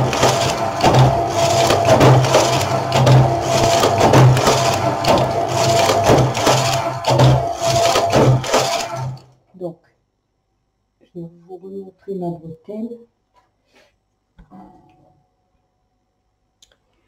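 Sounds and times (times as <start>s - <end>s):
knitting machine clatter: 0.0s - 9.2s.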